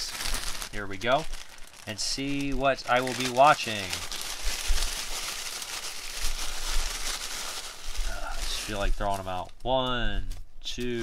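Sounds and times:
paper slips rustling: 0.0s - 9.5s
plastic bag crinkling: 0.0s - 9.6s.

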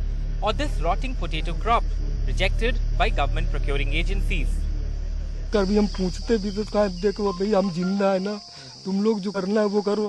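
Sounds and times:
insects shrilling: 0.0s - 10.0s
man talking: 0.4s - 4.6s, 5.5s - 10.0s.

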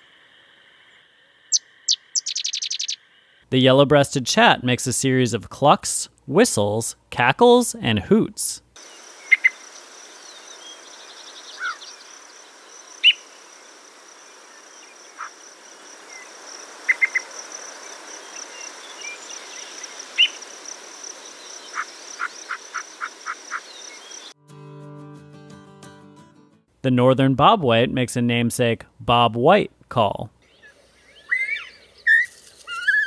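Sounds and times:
bird calling with whistled notes: 1.5s - 3.0s, 9.2s - 9.6s, 10.2s - 12.1s, 12.8s - 13.3s, 16.9s - 17.3s, 18.2s - 20.4s, 30.4s - 33.0s
high insect drone: 8.8s - 24.4s
guitar music: 24.4s - 26.7s.

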